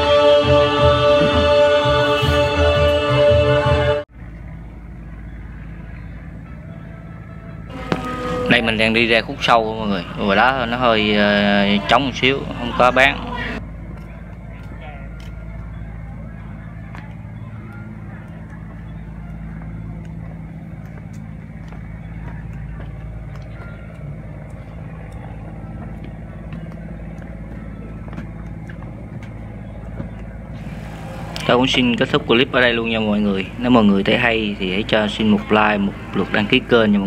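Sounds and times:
low machine hum: 0.0s - 37.0s.

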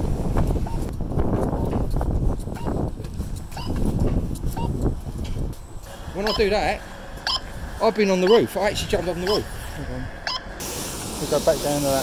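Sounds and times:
footsteps on concrete: 0.4s - 5.9s.

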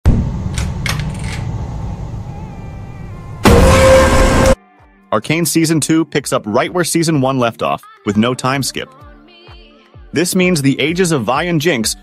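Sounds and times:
low rumble: 0.1s - 4.6s
loud harsh blast: 3.4s - 4.6s.

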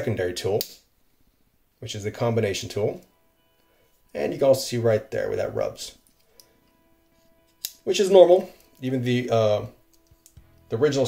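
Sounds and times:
faint background music: 0.0s - 0.9s, 1.8s - 11.0s.

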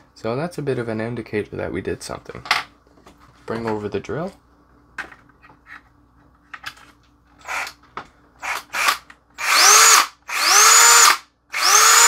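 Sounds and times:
cordless drill motor spinning: 7.4s - 7.8s, 8.4s - 12.0s.

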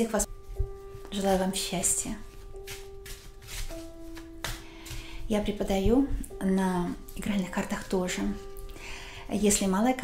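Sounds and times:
soft background music: 0.0s - 10.0s
playing cards shuffling: 2.5s - 5.0s.

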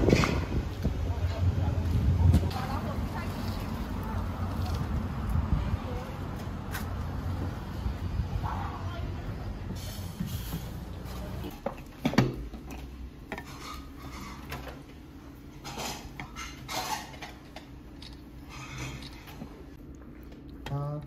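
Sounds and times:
sharp clatter of tableware: 15.6s - 17.4s.

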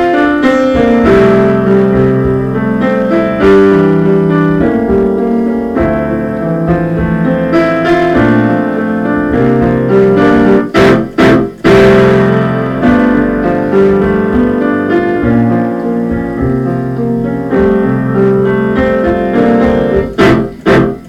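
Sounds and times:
piano playing sustained chords: 0.0s - 21.0s.

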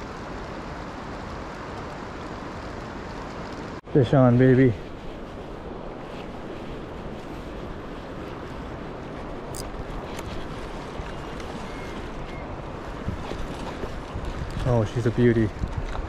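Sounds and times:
wind on microphone: 4.4s - 16.0s
flowing river water: 4.8s - 16.0s.

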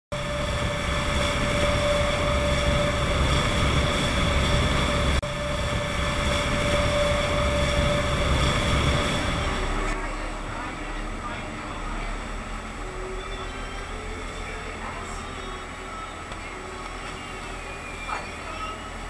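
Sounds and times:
boat engines droning: 0.1s - 19.0s.

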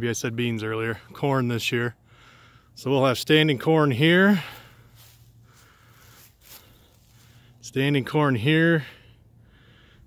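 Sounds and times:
soft rustle: 4.4s - 7.6s.

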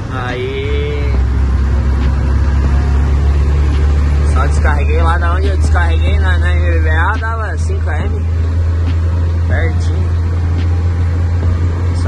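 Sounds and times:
truck diesel engine humming: 0.0s - 12.0s.

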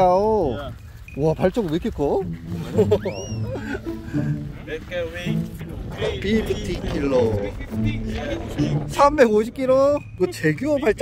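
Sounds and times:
rising and falling whistle: 2.9s - 3.6s.

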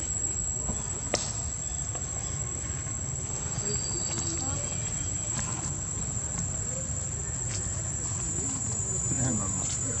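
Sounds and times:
insects droning: 0.0s - 10.0s.

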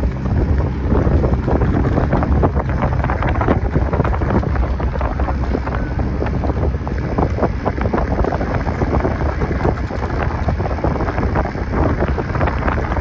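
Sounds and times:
water splashing: 0.0s - 13.0s
wind on microphone: 0.0s - 13.0s.

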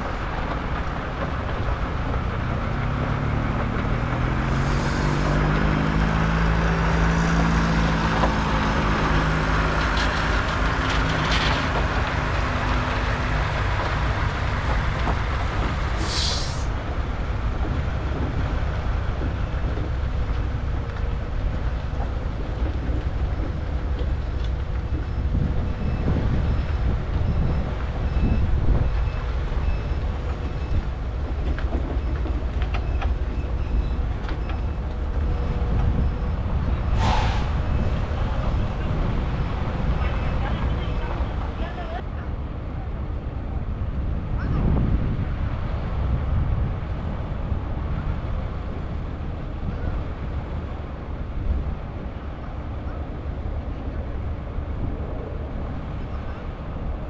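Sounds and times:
diesel truck engine accelerating: 0.0s - 57.0s
road noise: 0.0s - 57.0s
air hisses: 16.0s - 16.7s.

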